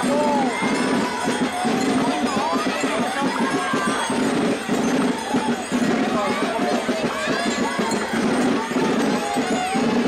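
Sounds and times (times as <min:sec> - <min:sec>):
children's voices: 0:00.0 - 0:10.0
crowd voices: 0:00.0 - 0:10.0.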